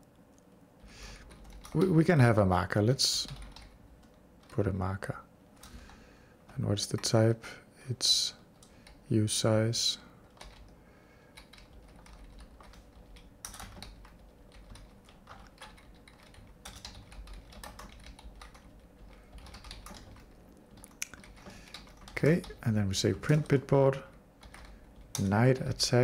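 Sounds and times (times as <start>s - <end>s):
typing on computer keyboard: 1.2s - 1.9s, 3.2s - 4.6s, 10.2s - 22.6s, 24.4s - 25.3s.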